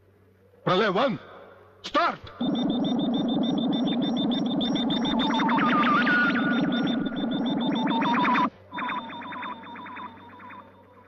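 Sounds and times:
rapid electronic bleeps: 0:02.3 - 0:11.0.

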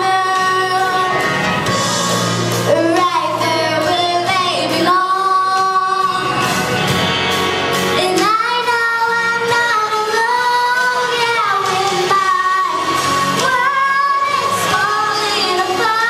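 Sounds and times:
girl singing into microphone: 0:00.0 - 0:01.6, 0:02.6 - 0:06.4, 0:08.0 - 0:16.0.

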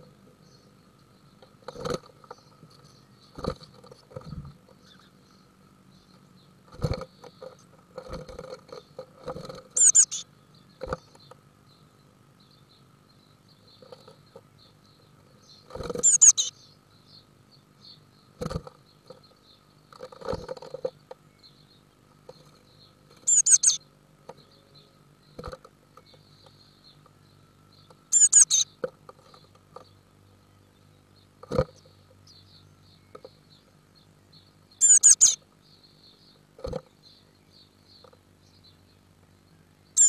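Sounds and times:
high thin bird calls: 0:09.5 - 0:11.0, 0:15.7 - 0:16.6, 0:23.2 - 0:23.8, 0:28.1 - 0:28.8, 0:34.8 - 0:35.4.

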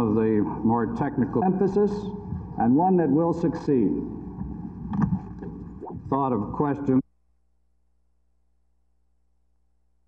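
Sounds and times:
room noise rumble and hiss: 0:00.0 - 0:07.1.

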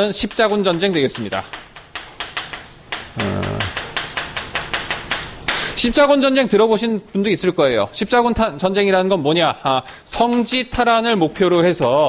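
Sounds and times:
chalk tapping and scraping: 0:00.0 - 0:06.0, 0:10.1 - 0:10.7.

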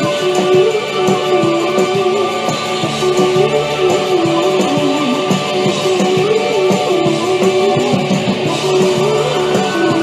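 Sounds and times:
pop band playing live: 0:00.0 - 0:10.0.

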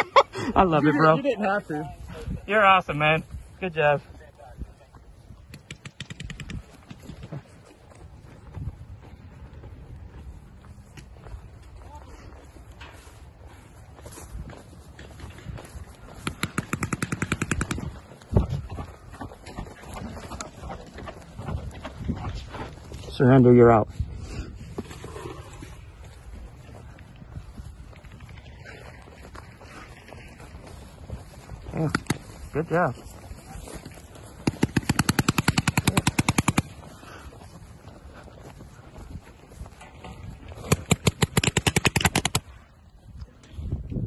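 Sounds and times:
paintball marker rapid fire: 0:05.5 - 0:07.0, 0:16.2 - 0:18.0, 0:34.4 - 0:36.8, 0:40.6 - 0:42.5.

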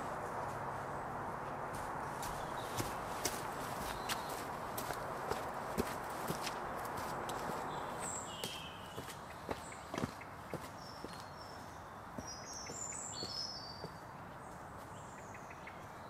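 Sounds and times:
steady outdoor hiss: 0:00.0 - 0:16.0
footsteps on stone steps and dirt: 0:01.4 - 0:15.0
bird chirps: 0:07.6 - 0:14.0.

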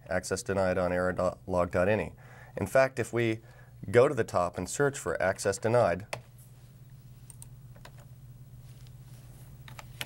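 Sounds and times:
steady low hum: 0:00.0 - 0:10.0
computer keyboard keystrokes: 0:09.6 - 0:10.0.

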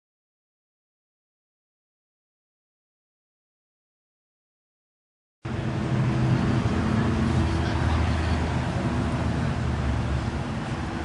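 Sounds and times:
car engine idling: 0:05.5 - 0:11.0.

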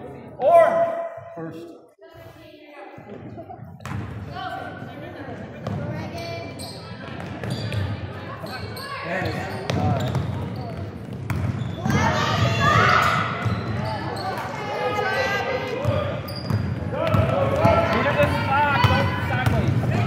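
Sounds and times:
people calling out in echoing gym: 0:00.0 - 0:10.7, 0:11.7 - 0:20.0.

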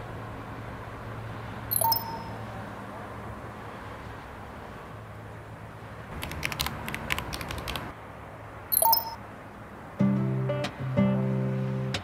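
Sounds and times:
short high electronic beep: 0:01.7 - 0:02.4, 0:08.7 - 0:09.2
typing clicks: 0:06.1 - 0:07.9.

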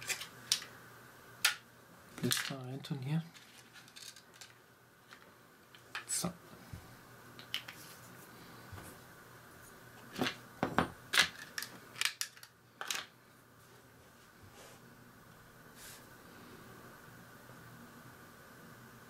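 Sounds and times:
plastic parts clicking and tapping: 0:11.2 - 0:13.1.

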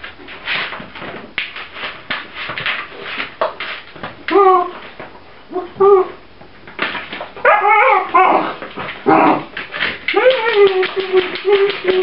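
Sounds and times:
puppies whining and yipping: 0:07.4 - 0:08.5
claws clicking on tile floor: 0:08.6 - 0:12.0.

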